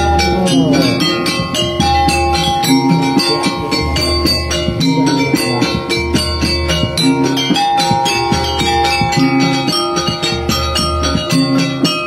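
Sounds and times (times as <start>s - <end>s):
mallet-struck metal percussion: 0.0s - 12.0s
sustained metallic tones: 0.0s - 12.0s.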